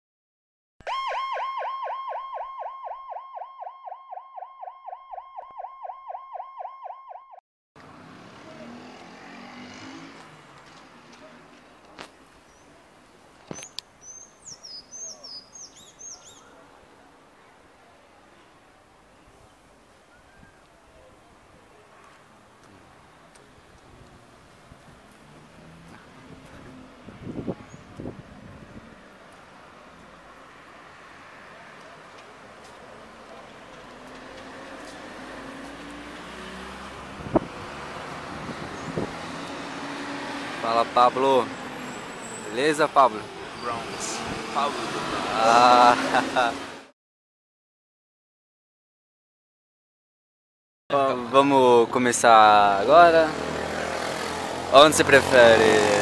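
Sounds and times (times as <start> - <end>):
emergency siren yelping: 0.8 - 7.4
distant traffic hum: 7.8 - 46.9, 50.9 - 56.0
street noise hiss: 7.8 - 46.9.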